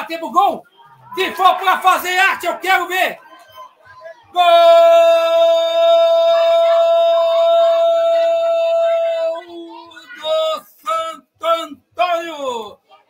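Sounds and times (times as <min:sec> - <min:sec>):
man shouting goal cry: 0:04.4 - 0:12.8.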